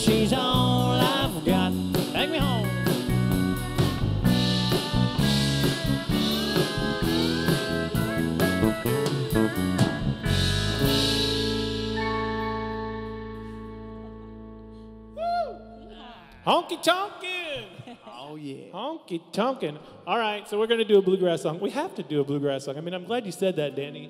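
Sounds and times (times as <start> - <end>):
acoustic guitar: 0.0 - 15.2
pedal steel guitar: 0.0 - 15.2
electric bass: 0.0 - 16.4.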